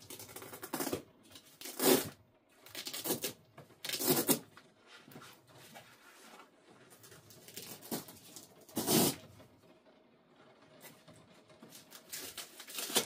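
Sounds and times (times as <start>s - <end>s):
nylon bag rustling and scraping: 7.3s - 9.3s.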